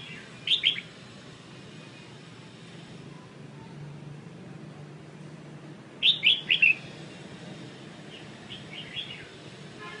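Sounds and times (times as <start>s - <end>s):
songbird chirping: 0.0s - 1.0s, 6.0s - 6.9s, 8.1s - 9.4s.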